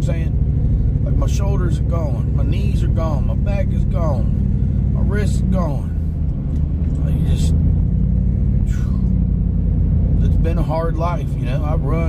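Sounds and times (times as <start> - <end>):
car engine rumble inside cabin: 0.0 - 12.0
road noise: 0.0 - 12.0.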